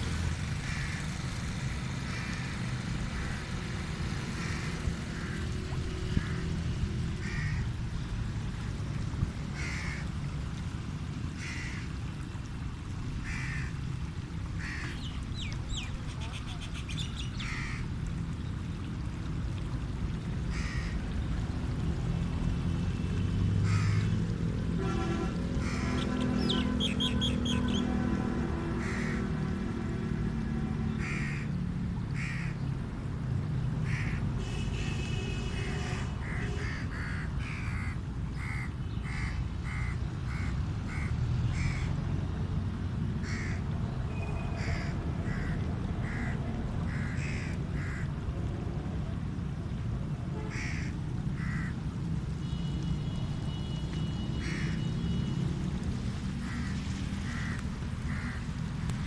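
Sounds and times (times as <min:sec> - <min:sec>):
flowing canal water: 0:00.0 - 0:59.0
crows cawing: 0:00.6 - 0:01.0, 0:07.2 - 0:07.7, 0:09.6 - 0:10.0, 0:11.4 - 0:11.9, 0:13.2 - 0:13.7, 0:14.6 - 0:15.0, 0:17.4 - 0:17.8, 0:20.5 - 0:21.0, 0:23.6 - 0:24.1, 0:25.6 - 0:26.0, 0:28.8 - 0:29.2, 0:31.0 - 0:31.5, 0:32.2 - 0:32.6, 0:33.9 - 0:34.2, 0:36.2 - 0:41.9, 0:43.2 - 0:43.6, 0:44.6 - 0:48.1, 0:50.5 - 0:51.8, 0:54.4 - 0:54.8, 0:56.4 - 0:58.6.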